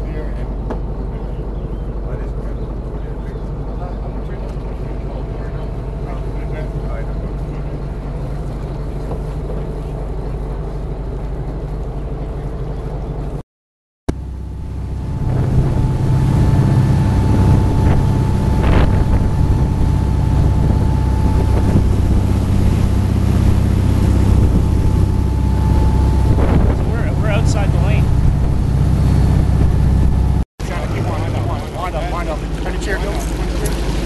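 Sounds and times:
boat engine drone: 0.0 - 13.4, 14.1 - 34.0
rushing boat wake: 14.1 - 34.0
wind buffeting microphone: 14.2 - 34.0.

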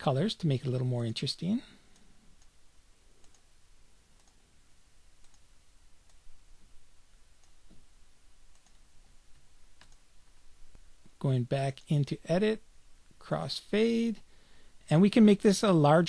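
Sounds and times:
low room hiss: 0.0 - 16.0
computer mouse clicks: 3.2 - 3.5, 4.2 - 4.4, 5.2 - 6.2, 8.5 - 10.0.

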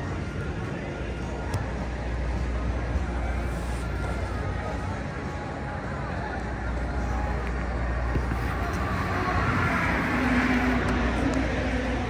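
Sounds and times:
road traffic noise: 0.0 - 12.0
steady low hum: 0.0 - 12.0
vehicle going by: 7.2 - 12.0.

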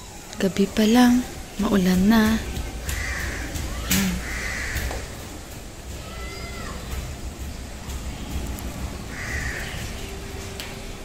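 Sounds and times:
bird calling harshly: 3.0 - 5.1.

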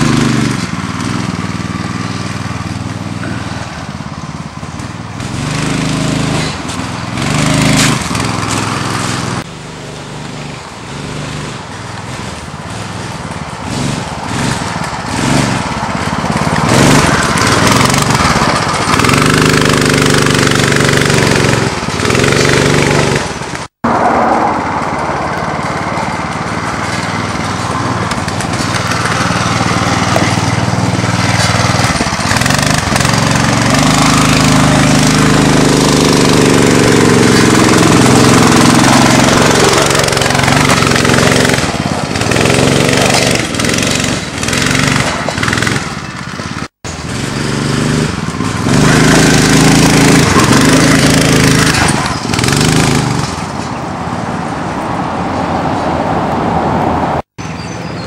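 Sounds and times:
go-kart engine revving: 0.0 - 54.8.

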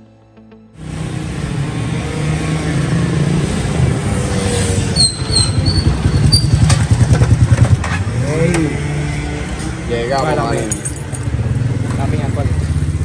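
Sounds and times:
small motorcycle engine approaching: 0.8 - 9.8.

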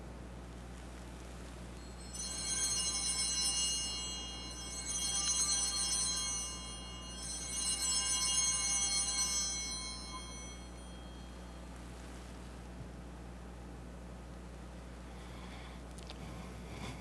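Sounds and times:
altar bells ringing: 1.8 - 12.1.

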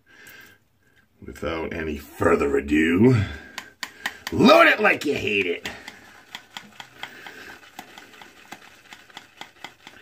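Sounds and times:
bristles scrubbing on soap: 4.3 - 10.0.

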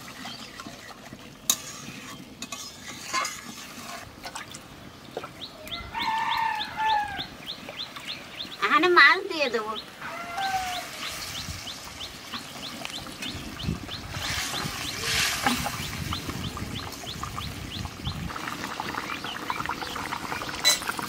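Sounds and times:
curry sizzling in oil: 0.0 - 4.2, 10.6 - 21.0
spatula stirring in pan: 0.0 - 4.3.

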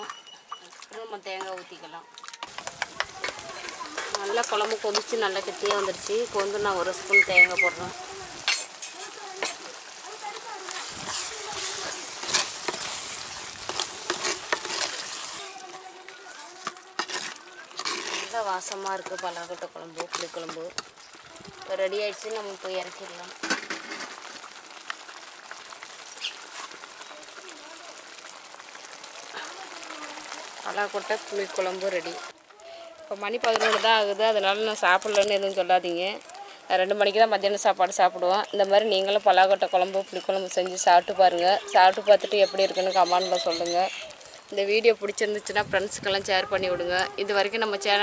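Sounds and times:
curry bubbling and sizzling: 0.0 - 48.0.

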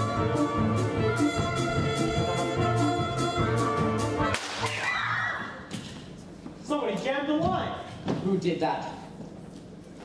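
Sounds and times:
pit band playing brassy music: 0.0 - 4.3.

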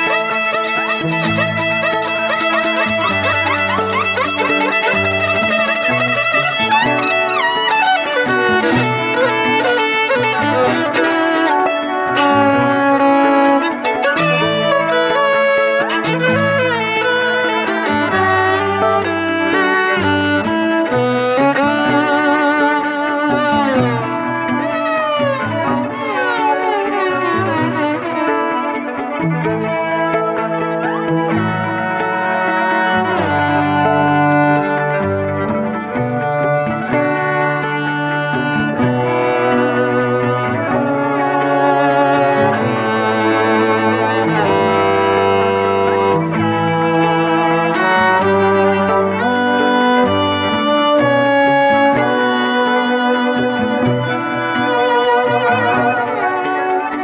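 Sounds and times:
bowed violin playing solo: 0.0 - 57.0.

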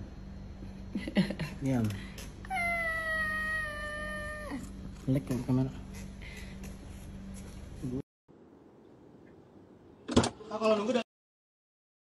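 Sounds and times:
cat meowing: 2.5 - 4.7.

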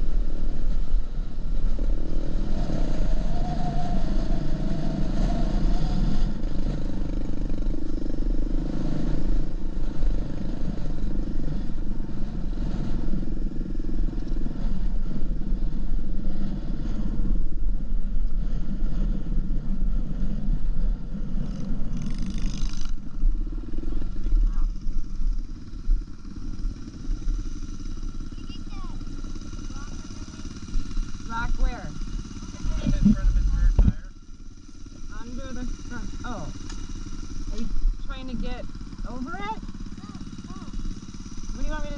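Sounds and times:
dirt bike engine running: 0.0 - 41.9
voices: 28.2 - 34.2, 35.0 - 41.9.

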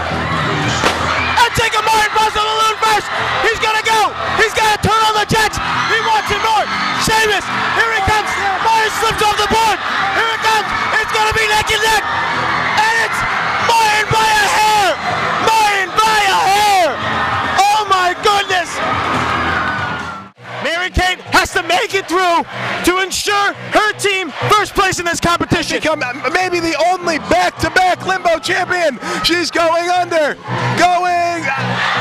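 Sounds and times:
crowd yelling and cheering: 0.0 - 32.0.

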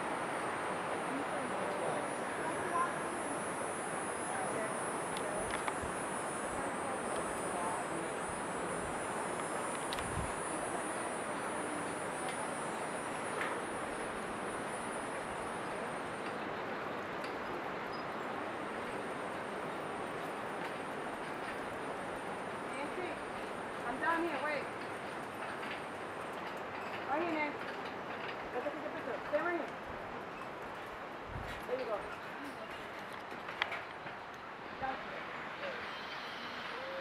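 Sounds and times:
constant hiss: 0.0 - 37.0
high-pitched insect drone: 1.3 - 15.7.

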